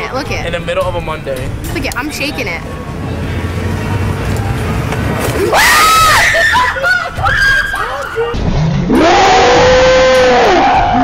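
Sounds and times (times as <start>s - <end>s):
city street rumble: 0.0s - 11.0s
woman screaming: 5.5s - 8.3s.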